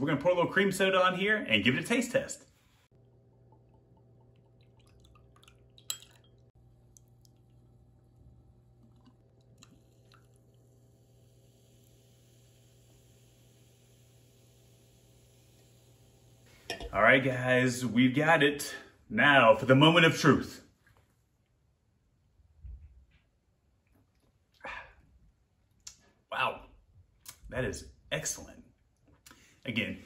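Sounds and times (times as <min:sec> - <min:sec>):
soda fizzing: 0:02.9 - 0:16.8
faint ticks and drips: 0:03.0 - 0:12.0
glass clink: 0:05.8 - 0:06.5, 0:16.7 - 0:16.9.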